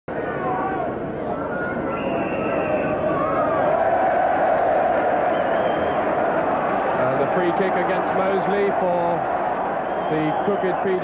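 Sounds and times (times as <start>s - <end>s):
muffled stadium crowd noise: 0.1s - 11.0s.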